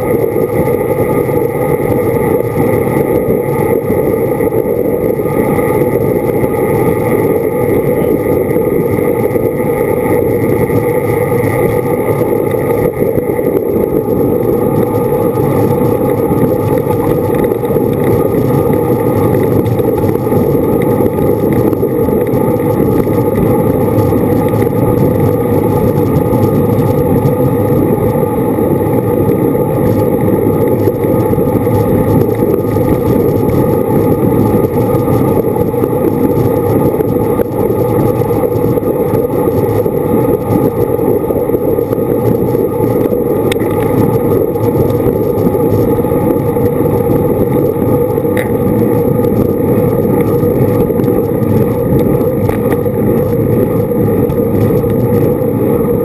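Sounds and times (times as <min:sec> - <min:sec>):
bicycle road noise: 0:00.0 - 0:56.0
wind rushing over microphone: 0:00.0 - 0:56.0.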